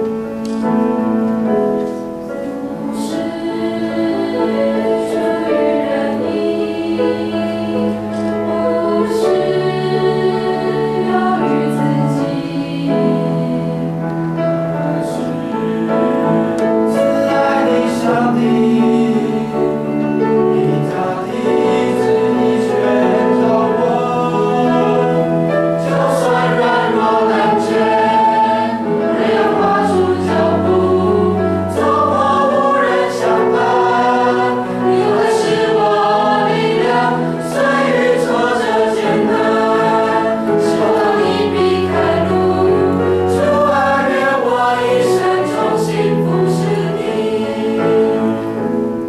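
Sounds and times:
group singing in unison: 0:02.6 - 0:49.0.

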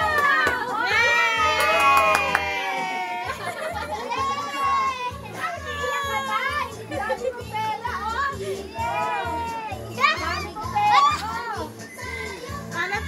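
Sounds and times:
background music with bass beat: 0:00.0 - 0:13.0
family voices calling out: 0:00.0 - 0:13.0.

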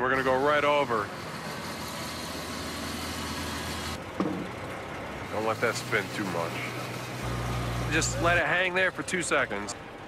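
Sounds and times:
heavy vehicle engine humming: 0:00.0 - 0:10.0.

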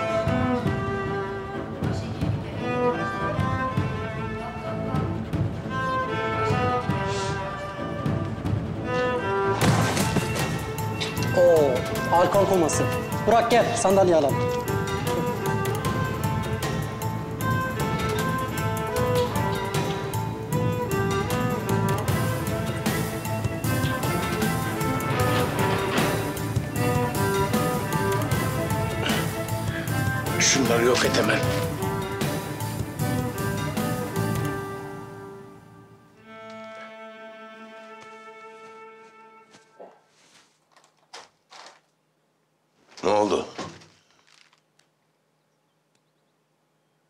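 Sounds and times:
bowed strings held notes: 0:14.3 - 0:34.8.

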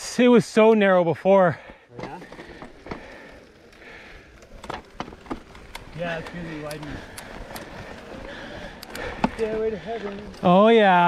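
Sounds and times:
bike tyres crunching on dirt: 0:00.3 - 0:11.0
bike clicks and knocks: 0:01.9 - 0:11.0.

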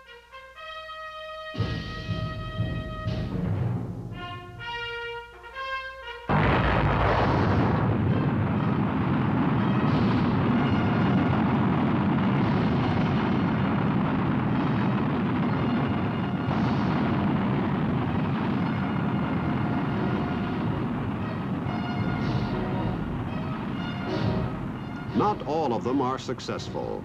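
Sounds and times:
film music score: 0:00.0 - 0:27.0.

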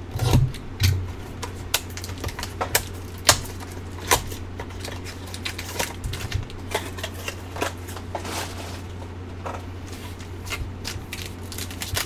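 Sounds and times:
low hum: 0:00.0 - 0:12.0
card pack scraping against box: 0:04.8 - 0:09.0.

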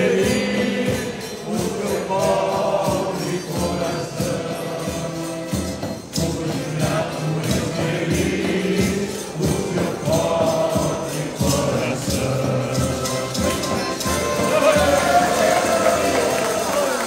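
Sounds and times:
tambourine: 0:00.0 - 0:17.0
piano accordion lively tune: 0:11.4 - 0:16.0.

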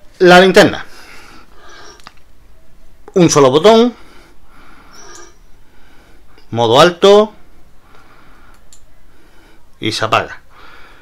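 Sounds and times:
soft breath: 0:00.9 - 0:02.0, 0:03.9 - 0:06.4, 0:07.4 - 0:09.8, 0:10.4 - 0:11.0.

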